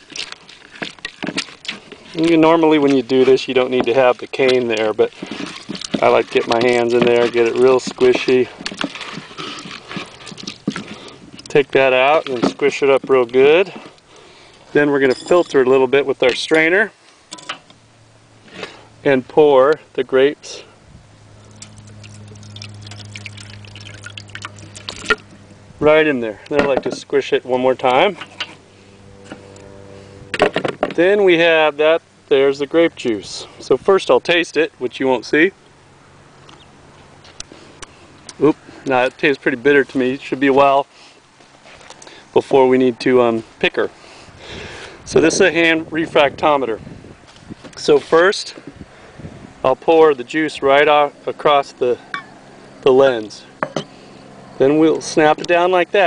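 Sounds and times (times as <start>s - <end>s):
wet squelches and crackles: 0.0s - 15.5s, 21.1s - 25.6s, 35.6s - 42.3s
hand squishing grapes: 0.0s - 17.0s, 18.4s - 28.7s, 36.4s - 48.6s
low hum: 20.6s - 31.0s
juice splashing into strainer: 21.4s - 25.4s.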